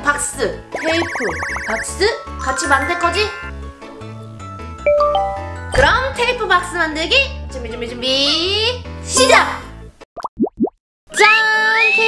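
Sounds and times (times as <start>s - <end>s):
rising cartoon bloops: 0.7s - 3.5s, 10.2s - 10.8s
jingle with gliding tone: 1.1s - 3.6s, 4.8s - 6.7s.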